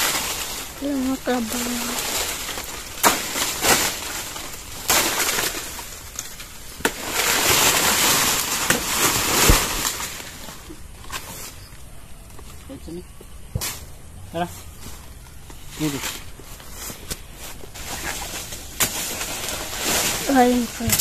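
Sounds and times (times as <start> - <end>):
dry leaves rustling and crackling: 0.0 - 12.9, 13.7 - 21.0.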